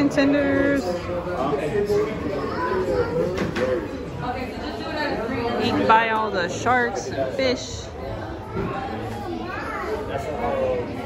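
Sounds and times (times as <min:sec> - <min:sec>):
chatter of many diners: 0:00.0 - 0:11.0
children's voices: 0:01.9 - 0:04.0, 0:07.9 - 0:11.0.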